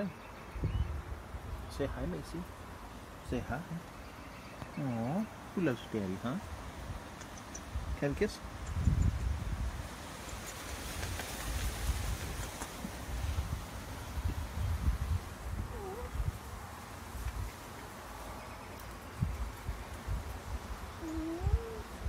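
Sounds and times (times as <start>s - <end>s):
cat meowing softly: 15.7s - 16.2s, 21.0s - 21.8s.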